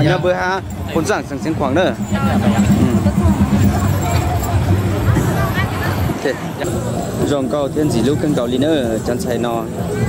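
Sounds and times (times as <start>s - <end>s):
crowd chatter: 0.0s - 10.0s
low pulsing hum: 0.2s - 6.2s.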